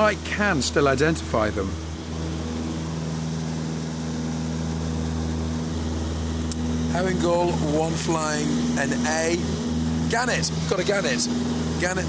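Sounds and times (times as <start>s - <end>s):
light aircraft engine drone: 0.0s - 12.0s.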